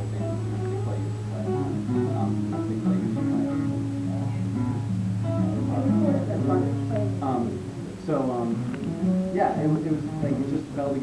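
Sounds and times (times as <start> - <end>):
acoustic guitar riff: 0.0 - 11.0
steady low hum: 0.0 - 11.0.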